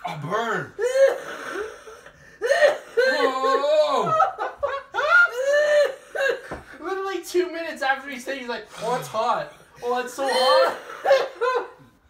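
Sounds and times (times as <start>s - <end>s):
people laughing: 2.5s - 6.6s.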